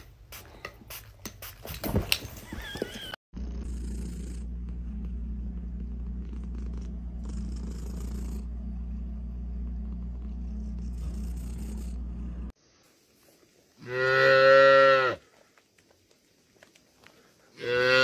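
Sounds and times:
cat purring: 0:03.4 - 0:12.5.

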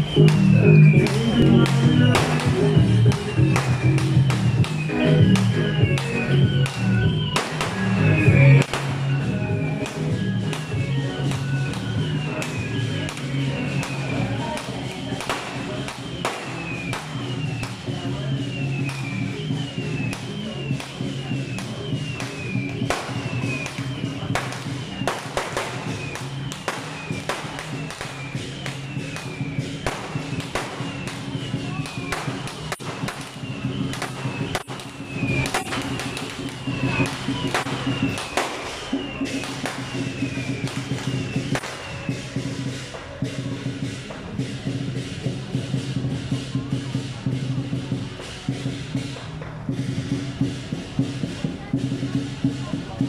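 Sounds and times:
drum and cymbal strikes: 0:00.0 - 0:53.0
percussion band playing: 0:00.0 - 0:53.0.

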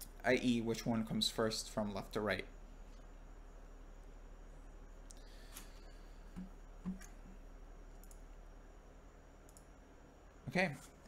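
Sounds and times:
faint clicks: 0:07.9 - 0:08.3, 0:09.4 - 0:09.7.

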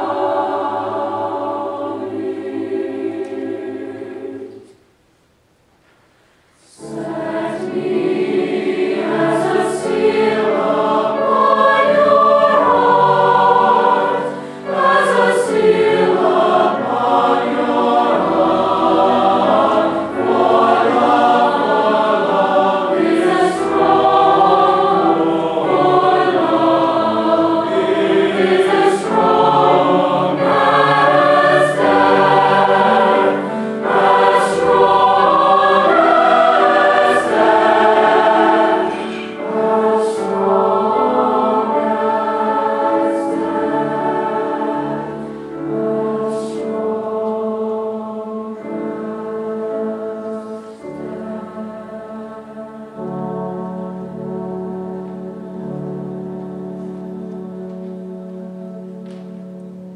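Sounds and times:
choir singing in harmony: 0:00.0 - 0:04.9, 0:06.6 - 0:59.9.

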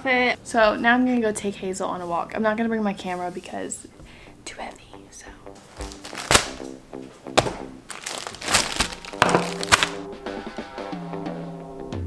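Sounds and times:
background music: 0:00.0 - 0:12.0
plastic packaging crinkling: 0:05.8 - 0:06.8, 0:07.4 - 0:10.0.

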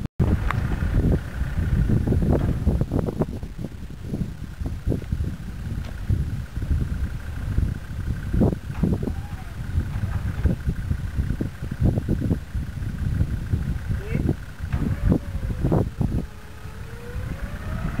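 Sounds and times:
engine rough low rumble: 0:00.0 - 0:18.0
wind buffeting microphone: 0:00.0 - 0:18.0.

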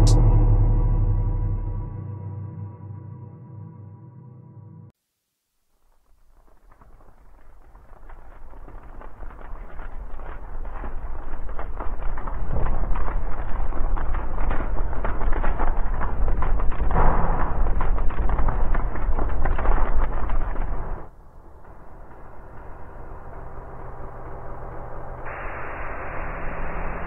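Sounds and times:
deep rumble: 0:00.0 - 0:04.9, 0:06.7 - 0:27.0
dense crackling noise: 0:05.1 - 0:27.0.

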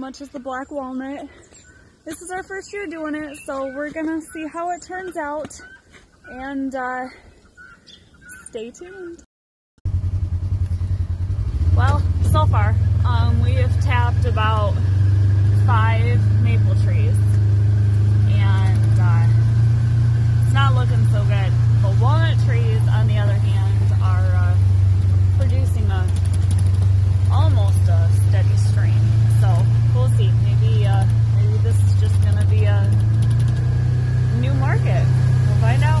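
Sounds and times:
vehicle engine idling: 0:09.9 - 0:36.0.

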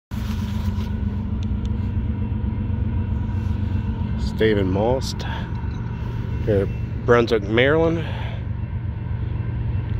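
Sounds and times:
low engine rumble: 0:00.1 - 0:09.9
faint steady whine: 0:00.2 - 0:09.9.

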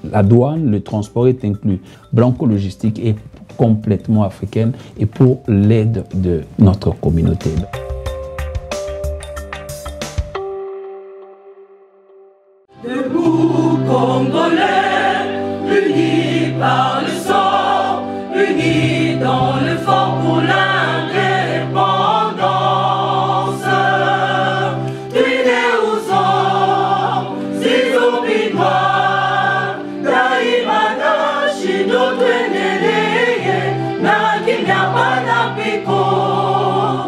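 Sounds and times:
gospel choir singing: 0:12.7 - 0:37.0.

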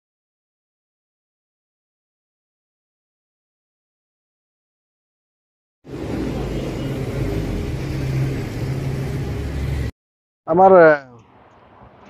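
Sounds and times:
truck engine idling: 0:05.9 - 0:09.9.

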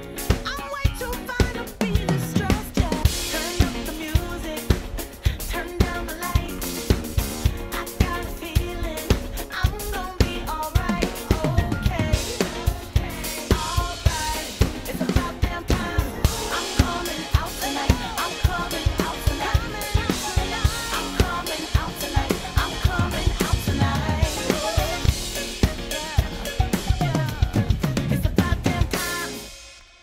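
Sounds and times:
pop song with sung melody: 0:00.0 - 0:29.7
drum kit playing a groove: 0:00.0 - 0:30.0.

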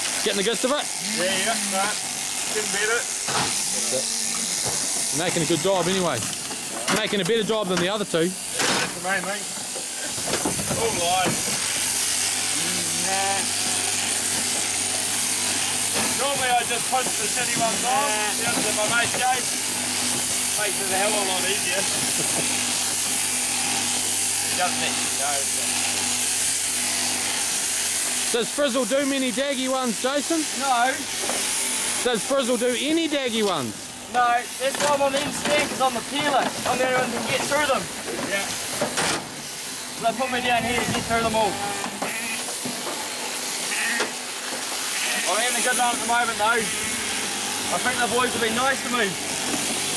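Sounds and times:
shearing handpiece buzzing: 0:00.0 - 0:49.9
sheep bleating: 0:00.9 - 0:02.2, 0:03.8 - 0:05.6, 0:41.0 - 0:42.5, 0:43.6 - 0:44.2, 0:44.8 - 0:47.1.

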